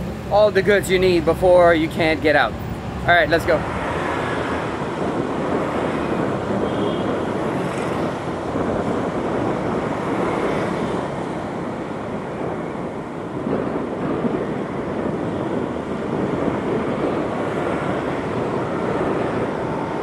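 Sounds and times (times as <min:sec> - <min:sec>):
dull street traffic: 0:00.0 - 0:20.0
wind noise on microphone: 0:00.0 - 0:20.0.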